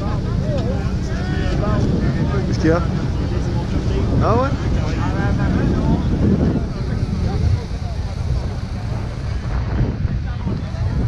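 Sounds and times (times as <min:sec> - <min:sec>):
crowd chatter: 0:00.0 - 0:11.0
steady low rumble: 0:00.0 - 0:11.0.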